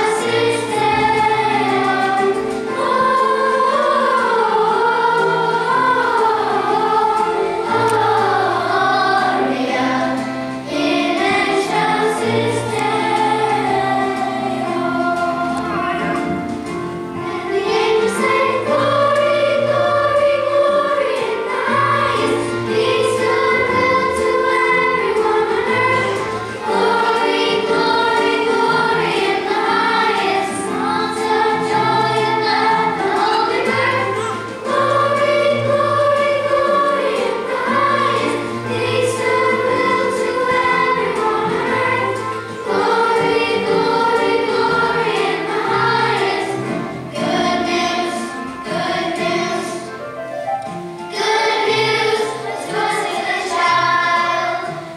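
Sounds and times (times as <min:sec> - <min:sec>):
children's choir singing: 0:00.0 - 0:54.9.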